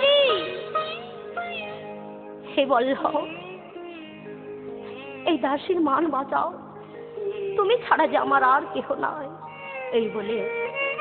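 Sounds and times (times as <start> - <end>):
devotional music with held notes: 0.0 - 11.0.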